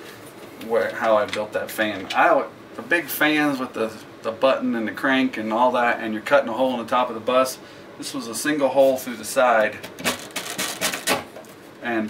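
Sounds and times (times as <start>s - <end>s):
velcro tearing apart: 10.0s - 11.2s.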